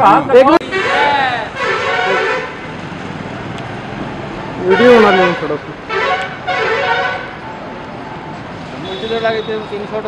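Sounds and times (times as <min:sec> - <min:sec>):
street noise: 0:00.0 - 0:10.0
vehicle horn honking: 0:00.6 - 0:02.6, 0:04.6 - 0:07.4, 0:08.8 - 0:09.8.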